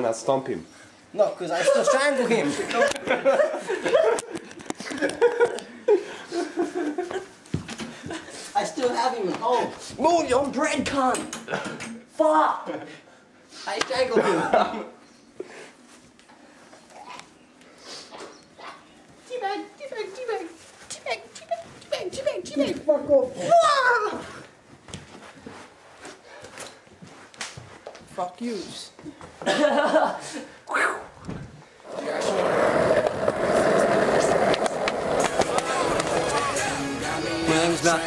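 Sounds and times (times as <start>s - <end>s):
soft scuffling: 18.7s - 29.4s
person yelping: 23.4s - 24.3s
skateboard wheels rolling: 31.9s - 36.8s.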